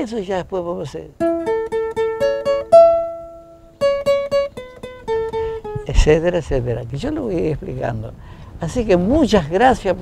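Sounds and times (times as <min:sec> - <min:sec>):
acoustic guitar plucking a scale: 0:01.1 - 0:09.2.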